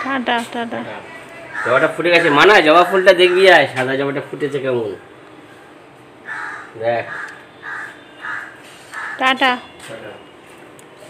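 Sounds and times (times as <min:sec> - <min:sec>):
crows cawing: 0:01.3 - 0:03.8, 0:06.2 - 0:09.4.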